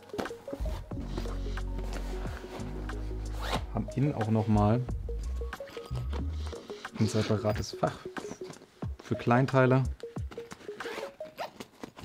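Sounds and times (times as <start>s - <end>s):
background music low notes: 0.0s - 12.0s
zipper pulled open: 0.6s - 3.8s, 5.6s - 7.6s, 10.4s - 12.0s.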